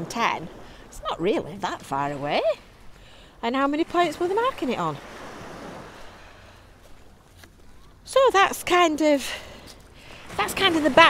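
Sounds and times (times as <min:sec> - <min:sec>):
waves washing on pebbles: 0:03.7 - 0:07.1, 0:10.1 - 0:11.0.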